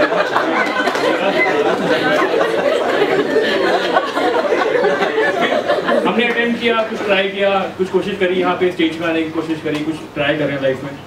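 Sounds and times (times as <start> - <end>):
chatter of overlapping voices: 0.0 - 11.0
man talking into a microphone: 5.4 - 11.0.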